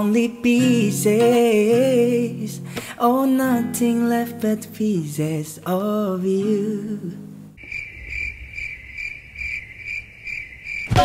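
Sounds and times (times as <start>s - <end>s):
cricket chirping trill: 7.6s - 11.0s.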